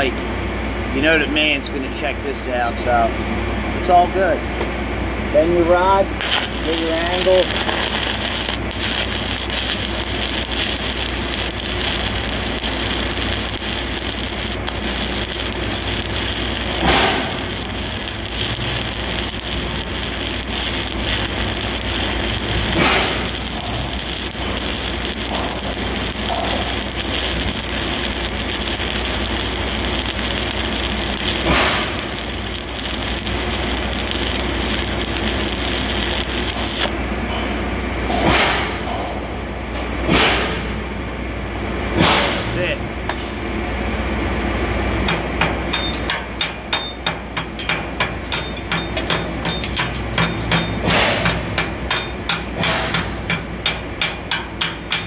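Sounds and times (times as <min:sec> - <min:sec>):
welding arc crackling hiss: 0:06.2 - 0:37.1.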